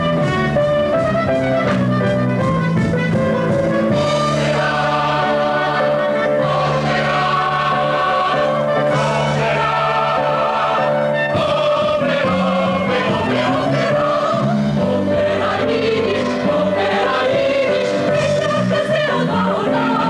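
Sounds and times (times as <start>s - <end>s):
musical accompaniment: 0.0s - 20.0s
chorus singing: 3.9s - 20.0s.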